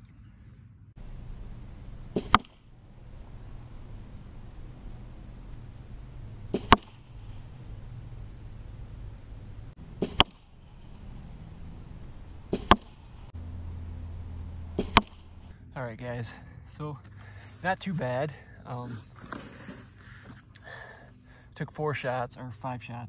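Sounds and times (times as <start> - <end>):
bolt hitting target: 2.0 - 2.8, 6.4 - 7.6, 9.9 - 11.1, 12.5 - 13.3, 14.7 - 15.5.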